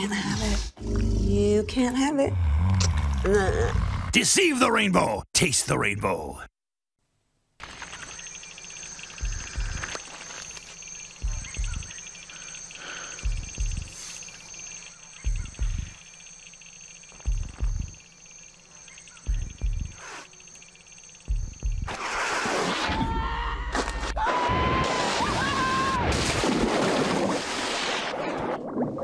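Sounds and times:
high cicada-like buzz: 7.6s - 23.6s
deep double thump: 11.2s - 12.0s, 13.2s - 14.0s, 15.2s - 16.0s, 17.2s - 18.0s, 19.3s - 20.0s, 21.3s - 21.9s.

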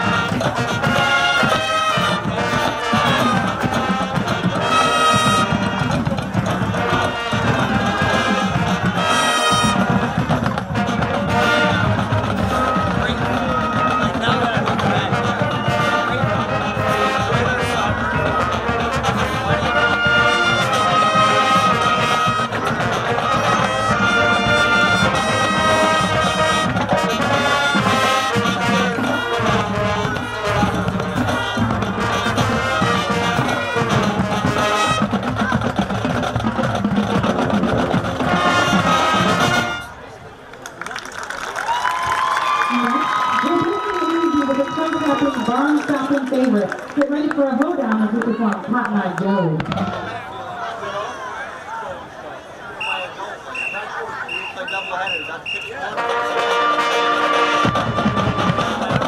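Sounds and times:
marching band playing: 0.0s - 40.5s, 41.3s - 51.2s, 52.8s - 59.0s.

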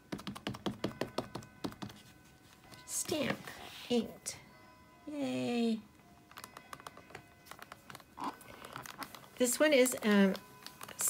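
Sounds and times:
stamp and paper clicks and taps: 0.1s - 2.0s.

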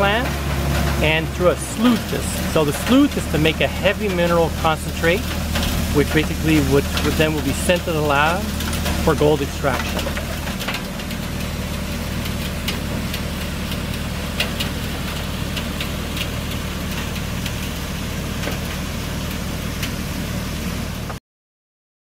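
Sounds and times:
machinery engines humming: 0.0s - 21.2s.

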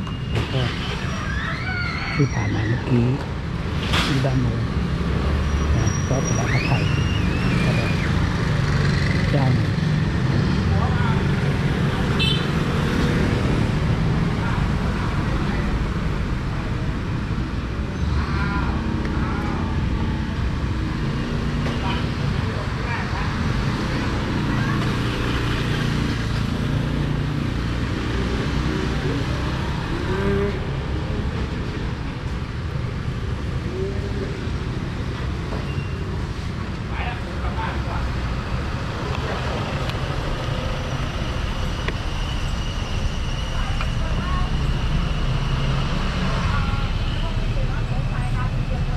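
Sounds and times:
street traffic: 0.0s - 48.9s.

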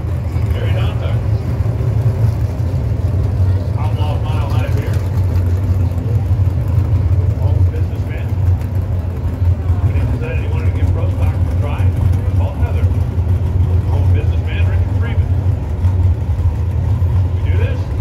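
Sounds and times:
race car engine idling: 0.0s - 18.0s.

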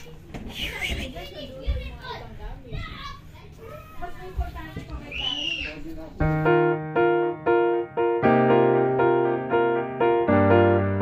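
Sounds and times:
children talking and calling out: 0.0s - 6.2s.

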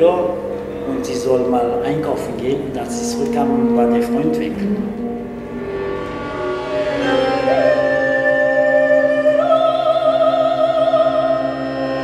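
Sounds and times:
instrumental drone chord: 0.0s - 12.0s.

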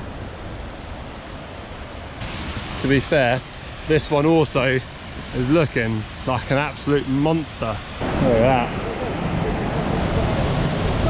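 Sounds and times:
falling water rushing: 2.2s - 11.0s
wind rumbling on microphone: 7.9s - 11.0s.

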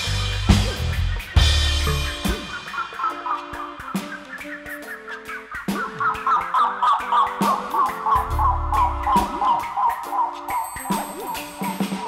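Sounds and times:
bass notes: 0.0s - 2.5s, 8.2s - 9.3s
drum kit: 0.0s - 6.4s, 7.4s - 12.0s.

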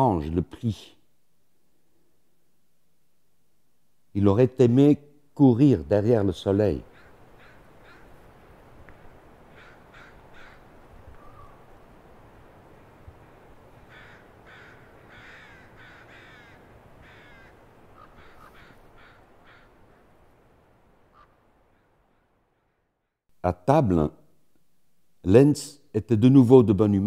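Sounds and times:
faint outdoor hiss: 0.0s - 27.0s
crows cawing: 6.8s - 8.3s, 9.4s - 11.7s, 13.8s - 20.2s, 21.0s - 22.9s.

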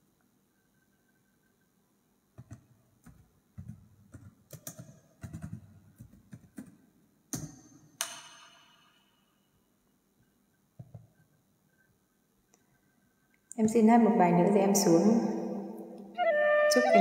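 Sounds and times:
hands tapping on a tabletop: 2.4s - 6.8s, 10.8s - 11.2s.

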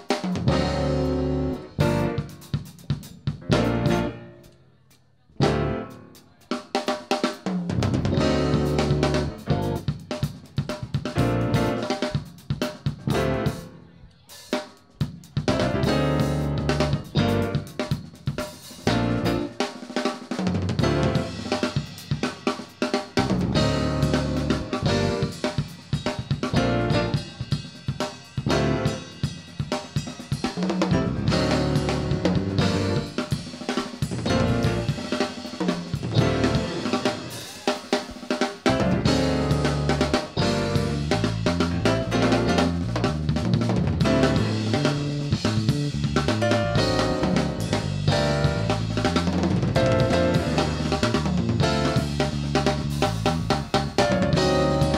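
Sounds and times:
rock drum kit solo: 0.0s - 54.9s
low bass notes: 0.4s - 2.4s, 3.3s - 4.2s, 5.4s - 5.9s, 7.8s - 9.9s, 11.1s - 11.8s, 13.1s - 13.6s, 15.5s - 17.7s, 18.8s - 19.5s, 20.7s - 21.6s, 23.2s - 25.5s, 26.4s - 27.3s, 28.5s - 29.1s, 30.9s - 33.2s, 34.2s - 35.0s, 36.0s - 36.9s, 38.7s - 54.9s.

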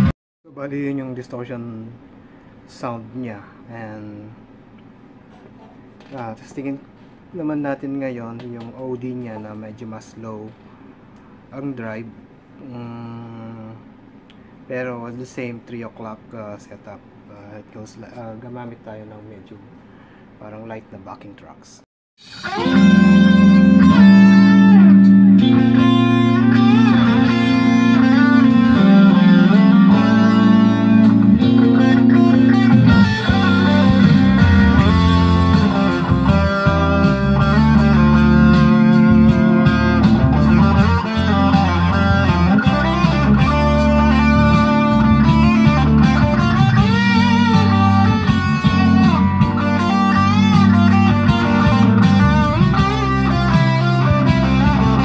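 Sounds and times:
low held guitar notes: 22.2s - 55.0s
overdriven electric guitar lead: 22.2s - 55.0s.

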